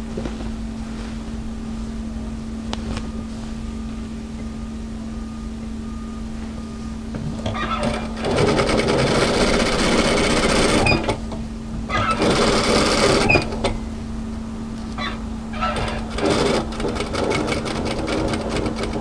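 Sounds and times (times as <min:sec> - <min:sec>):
steady machine hum: 0:00.0 - 0:19.0
sewing machine stitching: 0:07.4 - 0:11.2, 0:11.9 - 0:13.7, 0:15.6 - 0:19.0.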